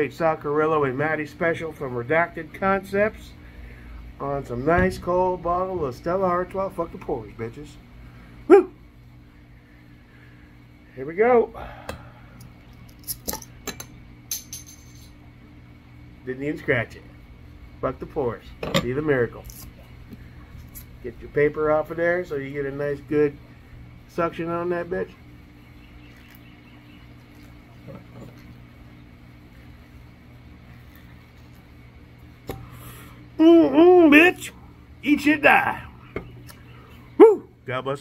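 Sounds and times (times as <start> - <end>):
steady low hum: 0.0 - 38.0
bottle opener prying off cap: 12.9 - 13.9.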